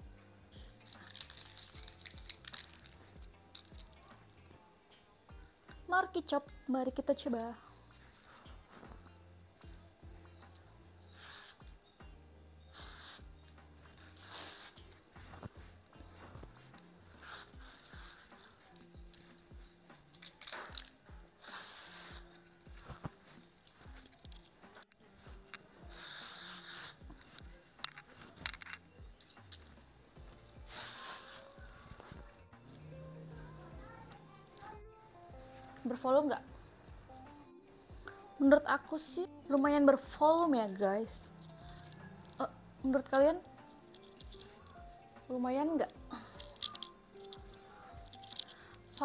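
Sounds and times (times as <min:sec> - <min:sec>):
faint background music: 0:00.0 - 0:49.0
handling clicks: 0:00.7 - 0:05.5, 0:13.3 - 0:21.3, 0:22.1 - 0:25.7, 0:27.0 - 0:32.9, 0:40.7 - 0:42.4, 0:43.4 - 0:45.3, 0:45.9 - 0:49.0
hair rustling: 0:00.8 - 0:04.4, 0:12.7 - 0:37.2, 0:40.0 - 0:45.2, 0:45.8 - 0:49.0
aerosol spray hissing: 0:11.1 - 0:11.6, 0:12.7 - 0:13.4, 0:14.2 - 0:14.8, 0:21.4 - 0:22.3, 0:25.9 - 0:27.4, 0:30.7 - 0:31.6.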